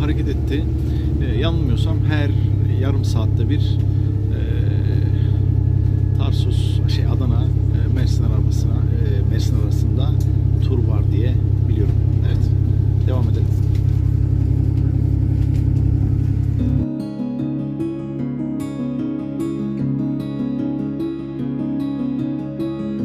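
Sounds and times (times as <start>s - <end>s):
people's voices: 0.0s - 5.4s
train carriage rumble: 0.0s - 16.8s
acoustic guitar music: 0.0s - 23.0s.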